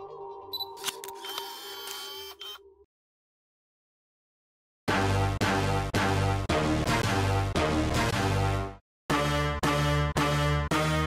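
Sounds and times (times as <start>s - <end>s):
camera shutter click: 0.8s - 2.6s
whirring shutter sound: 0.8s - 2.6s.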